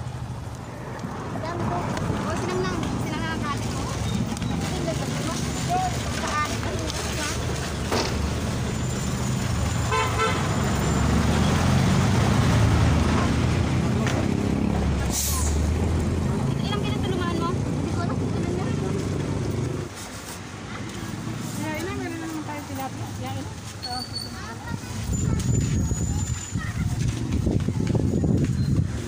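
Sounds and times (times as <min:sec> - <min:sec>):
people talking: 0:01.4 - 0:07.7, 0:12.9 - 0:19.6, 0:20.7 - 0:28.9.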